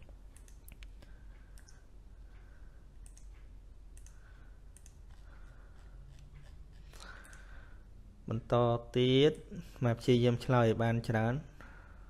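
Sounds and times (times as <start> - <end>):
steady low hum: 0.0 - 12.0
faint sharp clicks: 0.4 - 1.8, 3.0 - 5.3, 6.4 - 7.5.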